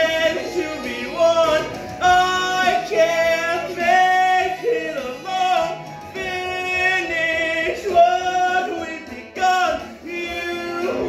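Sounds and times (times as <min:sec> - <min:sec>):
backing track: 0:00.0 - 0:11.0.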